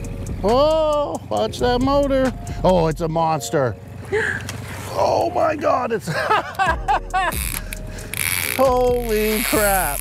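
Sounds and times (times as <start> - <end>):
person laughing excitedly: 6.1 - 7.6.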